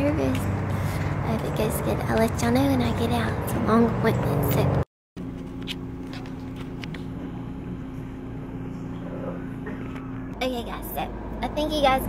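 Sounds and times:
low machinery hum: 0.0s - 12.0s.

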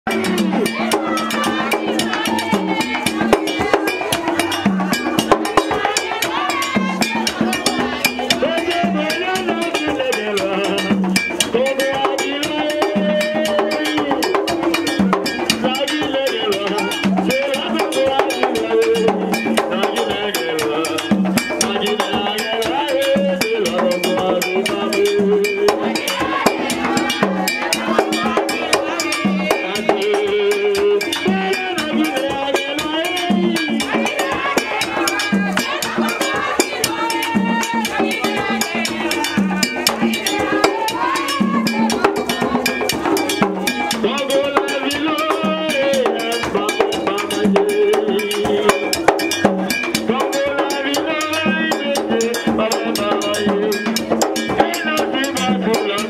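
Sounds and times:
hand drums and percussion: 0.0s - 56.0s
man singing through loudspeaker: 0.1s - 56.0s.

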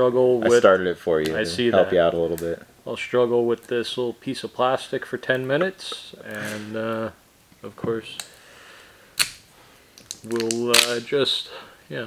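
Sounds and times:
plastic seal snapping: 9.2s - 9.4s.

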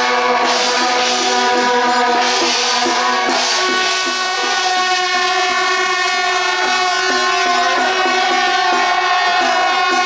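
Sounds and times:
shrill reed horn long note: 0.0s - 10.0s.

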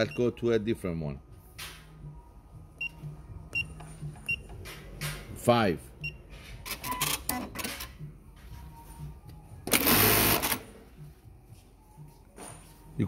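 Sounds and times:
high-speed machine stitching: 9.7s - 10.6s.

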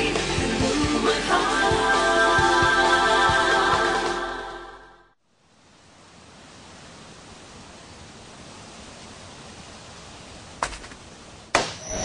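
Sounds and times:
steady rushing hiss: 5.2s - 12.0s
sharp crack: 10.6s - 12.0s.

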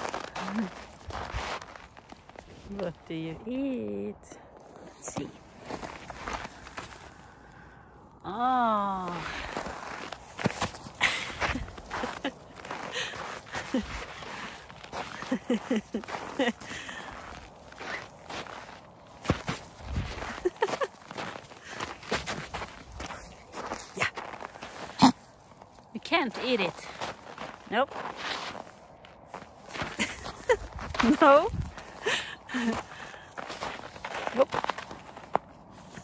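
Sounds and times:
footsteps crunching on snow: 0.0s - 3.4s, 4.6s - 7.4s, 9.0s - 36.0s.

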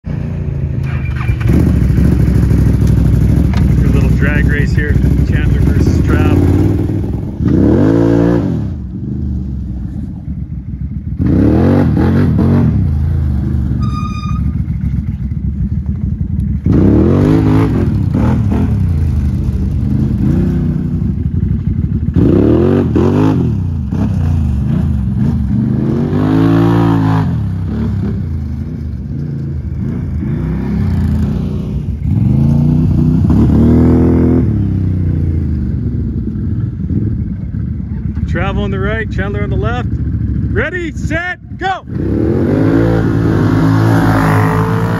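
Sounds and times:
engines revving: 0.1s - 44.9s
high-pitched beep: 13.8s - 14.6s.

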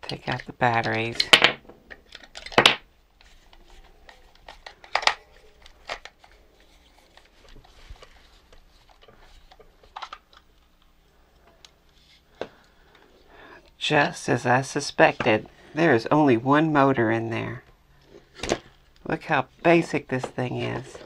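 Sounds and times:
plastic toy clattering: 0.1s - 8.1s.

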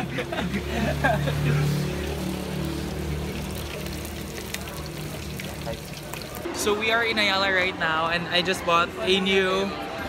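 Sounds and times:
oil sizzling and bubbling: 0.9s - 6.9s.

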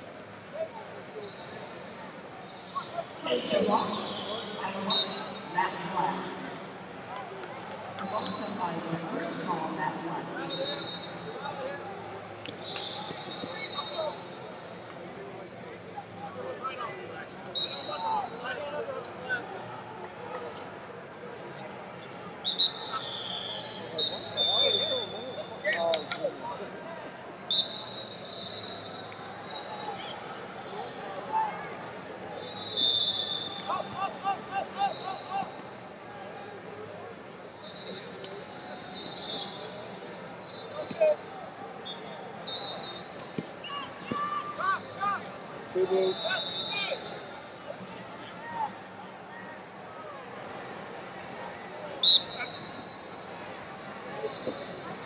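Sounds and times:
coaches and crowd voices: 0.0s - 55.0s
referees' whistles: 1.2s - 5.9s, 10.4s - 11.6s, 12.4s - 14.6s, 17.4s - 18.4s, 22.4s - 26.2s, 27.4s - 31.7s, 32.3s - 35.8s, 37.6s - 41.2s, 41.8s - 47.6s, 51.8s - 53.4s, 54.1s - 55.0s
referee's whistle blast: 22.4s - 25.7s, 32.4s - 34.0s, 38.9s - 39.8s, 41.8s - 43.2s, 45.8s - 47.3s, 52.0s - 53.0s.

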